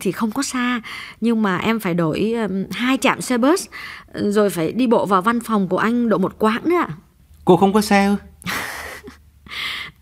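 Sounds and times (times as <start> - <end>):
woman short breath: 8.6 - 10.0
woman sighing: 8.6 - 10.0.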